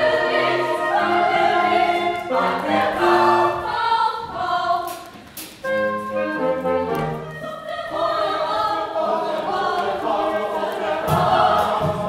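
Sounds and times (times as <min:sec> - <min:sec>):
choir singing: 0:00.0 - 0:05.1, 0:05.8 - 0:12.0
low thumping beat: 0:11.0 - 0:12.0.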